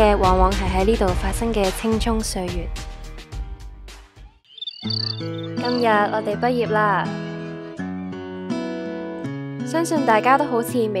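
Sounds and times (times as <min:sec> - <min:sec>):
cricket-like chirping: 0:04.5 - 0:06.0.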